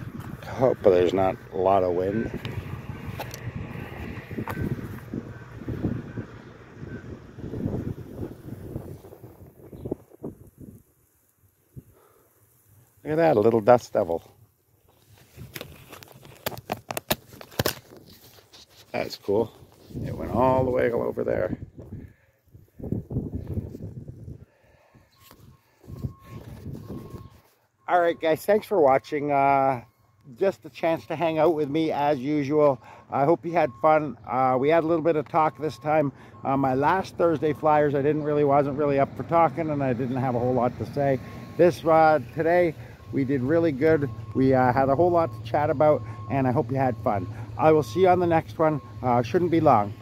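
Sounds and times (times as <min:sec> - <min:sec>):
wind buffeting microphone: 0:00.0 - 0:10.8, 0:19.5 - 0:24.5, 0:25.4 - 0:27.4.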